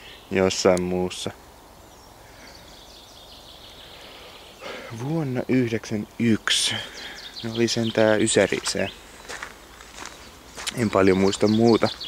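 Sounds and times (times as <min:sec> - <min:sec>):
outdoor background hiss: 0:00.0 - 0:12.0
man speaking: 0:00.3 - 0:01.4, 0:04.6 - 0:09.0, 0:10.6 - 0:12.0.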